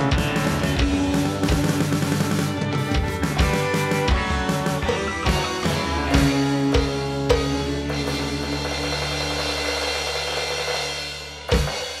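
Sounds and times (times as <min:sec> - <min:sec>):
recorded song: 0:00.0 - 0:11.9.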